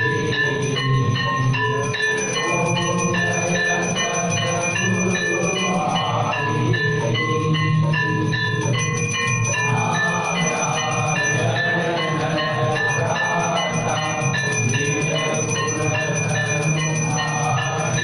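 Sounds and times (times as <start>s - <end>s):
temple bells ringing: 0.0s - 18.0s.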